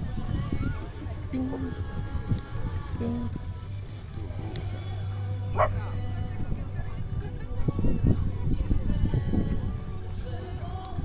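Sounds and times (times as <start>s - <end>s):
voices outdoors: 0.0s - 11.0s.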